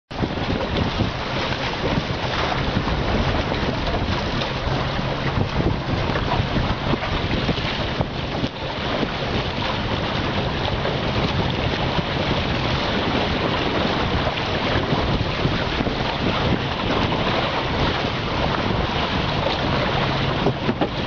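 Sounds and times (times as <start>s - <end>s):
water rushing along hulls: 0.1s - 21.0s
wind blowing on microphone: 0.1s - 21.0s.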